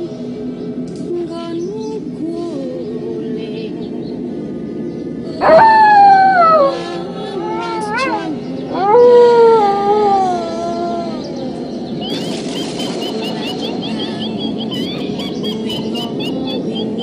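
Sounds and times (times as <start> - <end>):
low music drone: 0.0 - 17.0
dog howling: 5.4 - 11.4.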